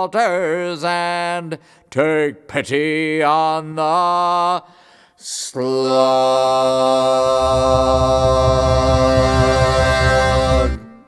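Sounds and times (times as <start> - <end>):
voices singing in harmony: 5.3 - 11.0
band playing: 7.2 - 11.0.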